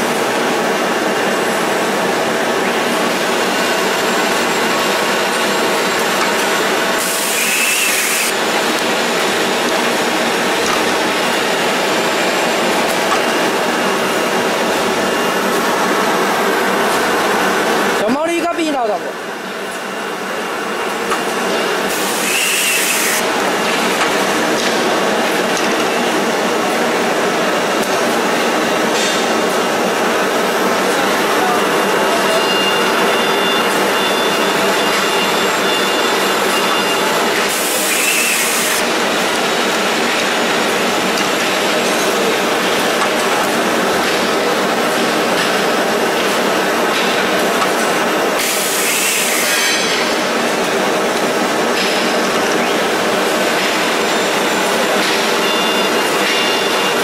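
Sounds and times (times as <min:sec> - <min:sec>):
machine line mechanical din: 0:00.0 - 0:57.0.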